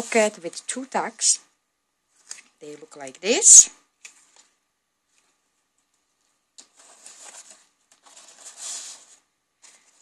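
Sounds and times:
paper rustling: 0:04.1 - 0:10.0.

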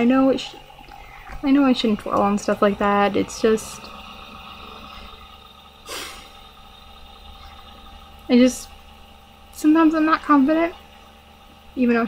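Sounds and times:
faint electrical hum: 0:00.0 - 0:12.0
breath through the nose: 0:05.9 - 0:06.3.

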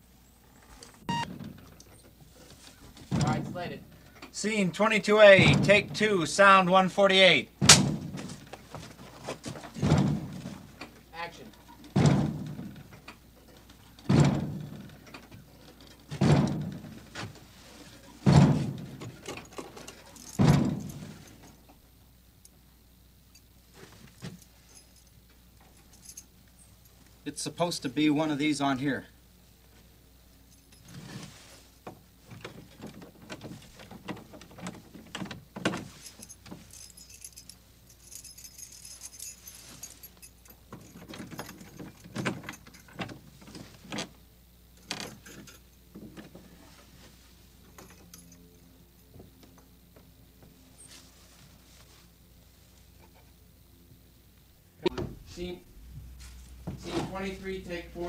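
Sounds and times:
heavy bangs on wooden door: 0:05.3 - 0:06.0, 0:07.6 - 0:08.3, 0:09.8 - 0:10.6, 0:11.9 - 0:12.8, 0:14.1 - 0:14.8, 0:16.1 - 0:16.9, 0:18.2 - 0:19.0, 0:20.4 - 0:20.9
knocks against wooden door: 0:12.0 - 0:12.6
keys jangling: 0:19.2 - 0:21.6, 0:24.3 - 0:26.3, 0:35.8 - 0:43.0, 0:44.9 - 0:45.7, 0:47.8 - 0:48.5.

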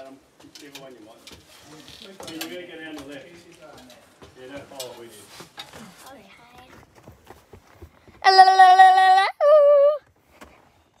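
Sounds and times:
child singing ahh: 0:08.2 - 0:10.0.

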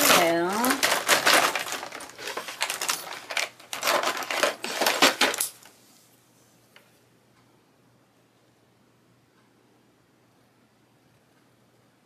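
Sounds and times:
pens and tools clattering: 0:00.0 - 0:05.7.

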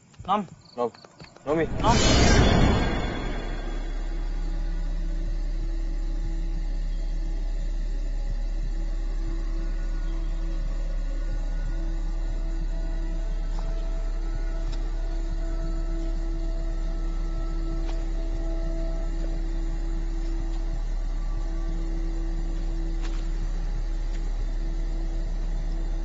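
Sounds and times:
deep steady rumble: 0:01.5 - 0:09.7.

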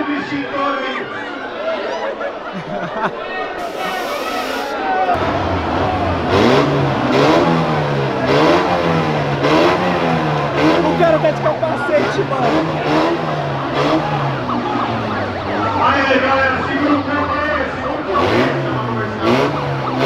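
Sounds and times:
crowd voices: 0:00.0 - 0:20.0
car engine revving: 0:03.6 - 0:20.0.

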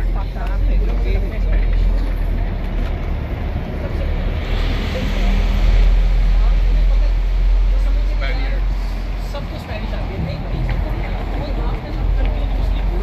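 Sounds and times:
bus driving past: 0:00.0 - 0:13.0
low rumble of street traffic: 0:00.0 - 0:13.0.

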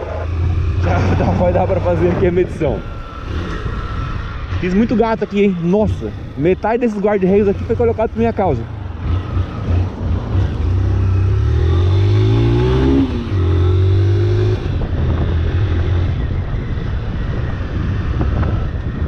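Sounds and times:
motorcycle engine accelerating: 0:00.0 - 0:19.0.

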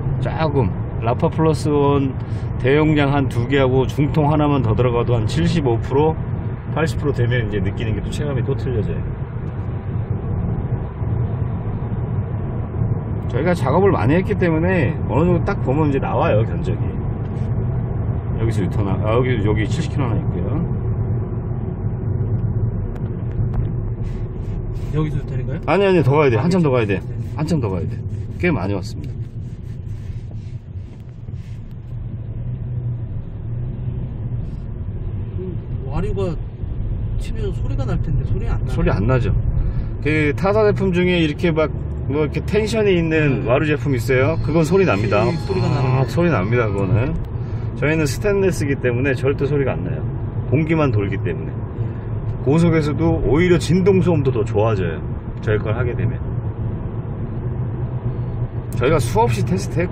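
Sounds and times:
car engine and road noise: 0:00.0 - 0:59.9.

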